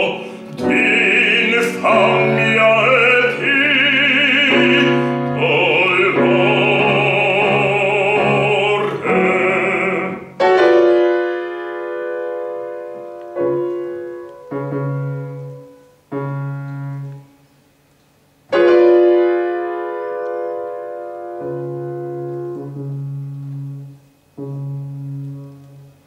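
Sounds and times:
grand piano chords: 0.0 - 26.0.

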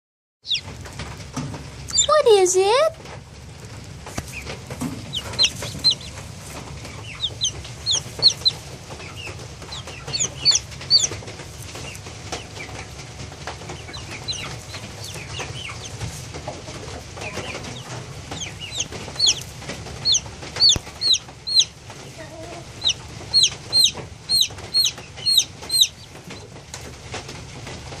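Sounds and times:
chicks peeping: 0.4 - 28.0
steady low hum: 2.9 - 28.0.

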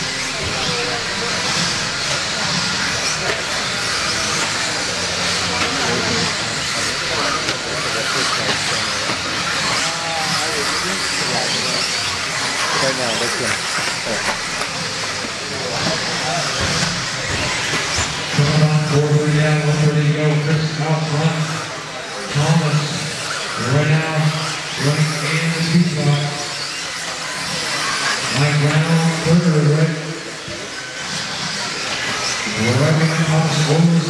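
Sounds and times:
rc car motors whining: 0.0 - 34.0.

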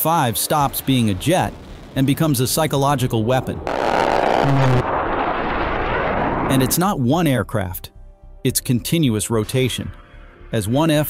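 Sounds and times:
fighter jet roaring overhead: 0.8 - 6.8.

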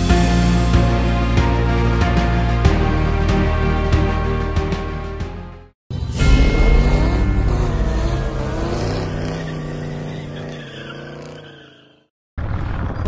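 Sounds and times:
car engine revving: 6.2 - 12.0.

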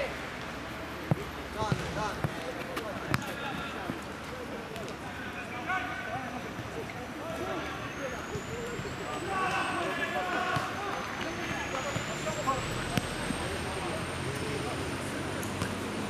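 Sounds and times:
players calling out: 1.0 - 15.7.

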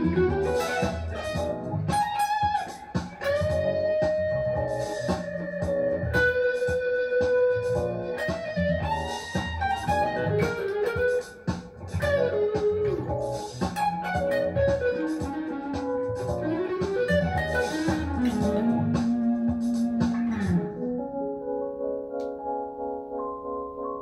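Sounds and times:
electric guitar solo with slides: 0.0 - 20.9
hip-hop backing track: 0.0 - 24.0.

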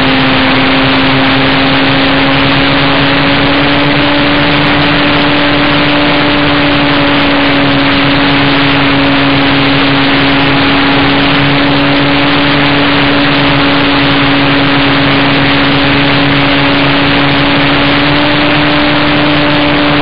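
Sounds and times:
airflow rushing over microphone: 0.0 - 20.0
model plane motor humming: 0.0 - 20.0.

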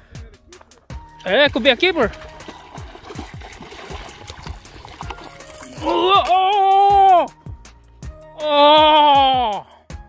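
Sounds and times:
fish splashing at water surface: 2.2 - 6.1.

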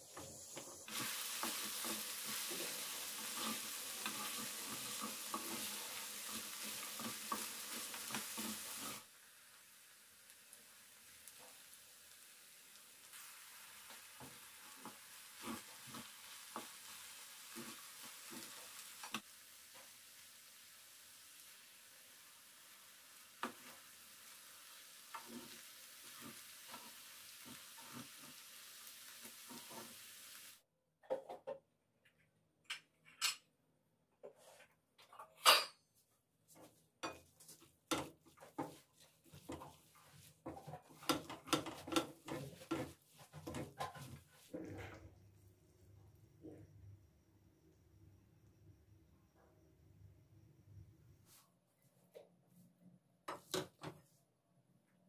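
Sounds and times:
food sizzling in a frying pan: 0.0 - 30.6, 37.0 - 44.6
spatula scraping a pan: 0.2 - 9.1, 13.1 - 19.2, 23.4 - 30.1, 36.5 - 45.0.

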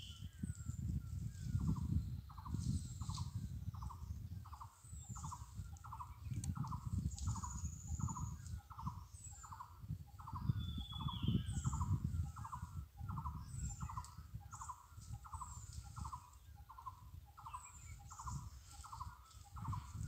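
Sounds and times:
small birds chirping: 0.0 - 20.0.

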